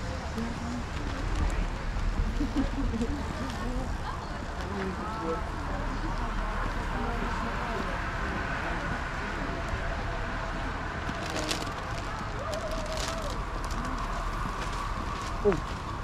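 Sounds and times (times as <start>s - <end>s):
distant voices of passers-by: 0.0s - 16.0s
urban background noise: 0.0s - 16.0s.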